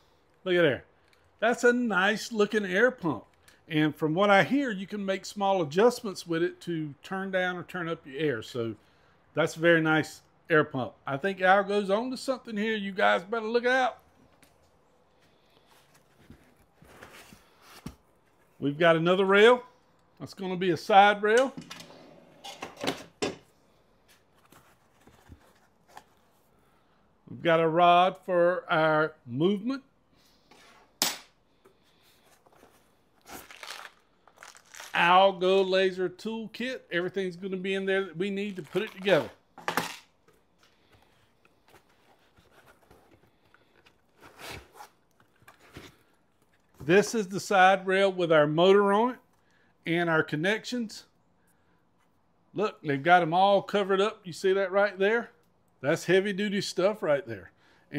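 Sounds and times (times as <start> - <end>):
cardboard rustling: 15.4 - 18.6, 24.0 - 26.4, 32.0 - 35.0, 40.2 - 46.9
packing material rustling: 32.2 - 35.2, 38.5 - 39.4.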